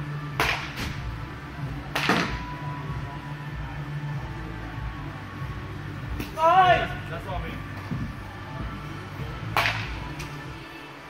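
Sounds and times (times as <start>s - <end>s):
baseball bat swing and hit: 0.3s - 1.2s, 1.8s - 2.6s, 9.4s - 10.4s.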